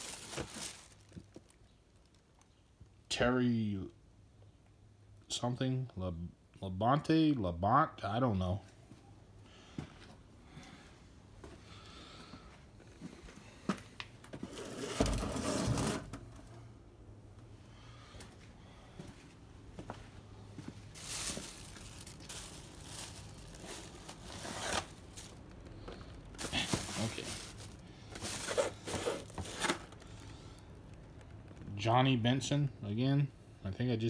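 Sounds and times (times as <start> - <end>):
cardboard and plastic packaging rustling: 0.0 - 2.4, 19.8 - 30.4.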